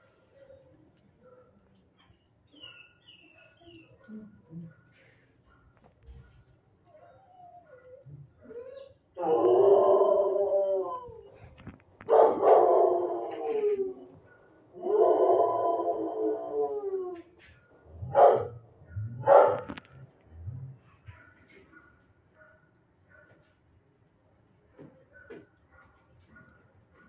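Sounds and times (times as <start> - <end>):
dog howling: 6.9 - 11.4, 12.1 - 14.2, 14.8 - 17.3.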